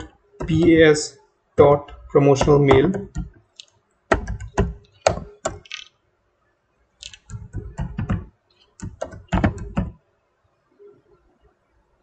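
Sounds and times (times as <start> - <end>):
typing on computer keyboard: 2.4 - 5.9, 7.0 - 10.0.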